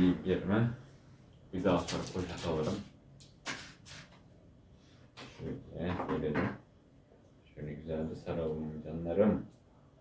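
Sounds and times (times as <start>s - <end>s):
man talking: 0.0s - 0.8s, 1.5s - 2.9s, 5.3s - 6.6s, 7.5s - 9.5s
knocks and clatters on a table: 5.2s - 6.7s.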